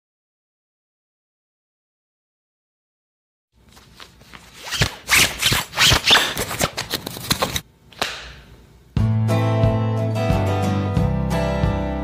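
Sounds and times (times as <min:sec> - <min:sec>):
acoustic guitar music: 0:09.0 - 0:12.0.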